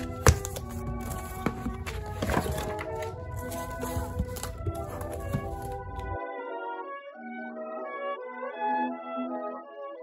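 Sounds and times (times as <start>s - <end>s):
cardboard mailers rustling: 0.0s - 6.2s
background music: 0.0s - 10.0s.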